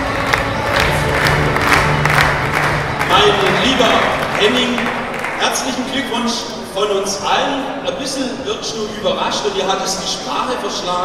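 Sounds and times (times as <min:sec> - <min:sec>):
music playing: 0:00.0 - 0:06.1
crowd clapping and cheering: 0:00.0 - 0:06.2.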